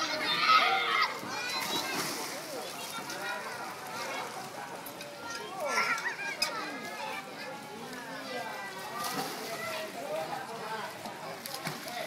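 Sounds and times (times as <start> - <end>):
children's voices: 0.0 - 12.0.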